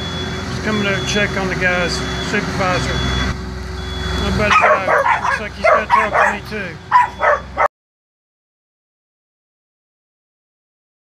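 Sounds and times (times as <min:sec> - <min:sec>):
dog barking: 0:04.5 - 0:07.7.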